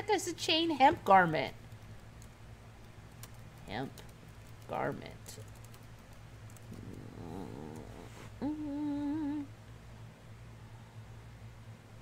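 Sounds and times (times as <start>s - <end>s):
woman humming: 6.7s - 9.6s.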